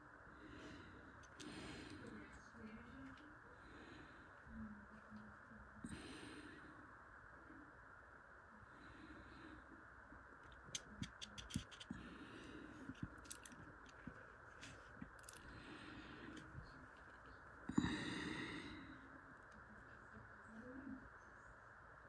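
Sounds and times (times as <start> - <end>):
pen ticking and scratching paper: 10.6 - 12.0.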